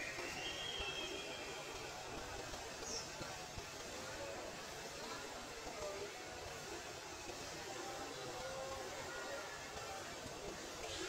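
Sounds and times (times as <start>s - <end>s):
faint high whine: 0.0s - 3.3s.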